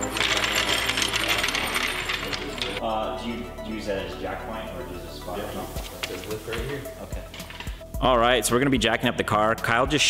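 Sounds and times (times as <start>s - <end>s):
floor jack rattling on concrete: 0.0s - 2.8s.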